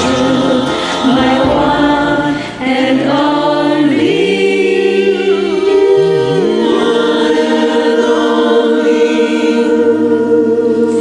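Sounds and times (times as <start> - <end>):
karaoke backing track: 0.0 - 11.0
voices singing together: 0.0 - 11.0.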